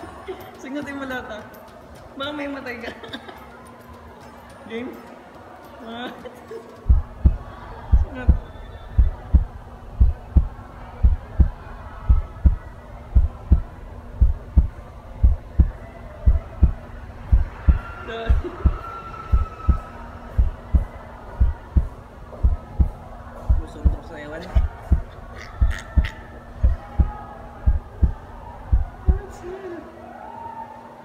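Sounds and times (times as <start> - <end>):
steady low hum: 6.8 - 30.2
heartbeat thumps: 6.9 - 29.4.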